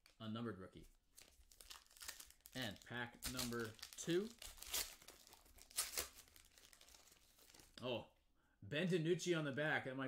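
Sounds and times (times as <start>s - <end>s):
foil wrapper crinkling: 1.2s - 7.8s
foil wrapper ripping: 1.5s - 7.7s.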